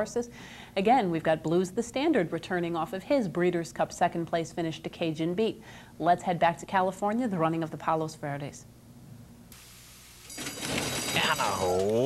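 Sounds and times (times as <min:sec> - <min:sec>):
low hum and tape hiss: 0:00.0 - 0:12.0.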